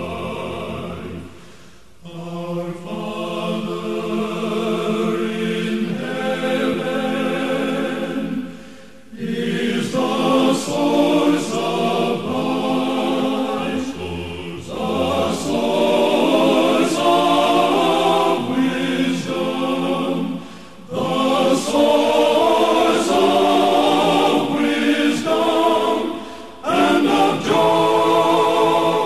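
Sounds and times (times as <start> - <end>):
male vocal group singing a hymn: 0.0 - 1.3, 2.0 - 29.0.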